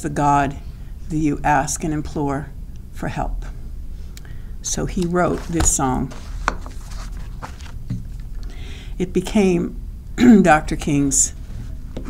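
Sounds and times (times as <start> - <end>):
steady low hum: 0.0 - 12.0
paper rustling: 5.0 - 8.3.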